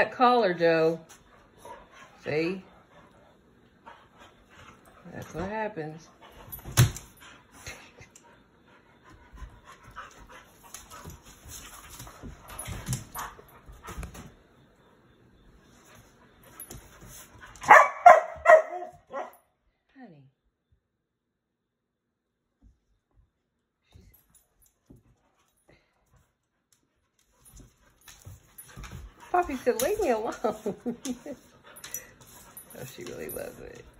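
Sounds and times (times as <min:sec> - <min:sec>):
dogs play-fighting: 0:01.0 - 0:19.4, 0:23.9 - 0:33.9
dogs scuffling: 0:09.1 - 0:14.5, 0:27.2 - 0:33.9
woman laughing: 0:30.1 - 0:31.5.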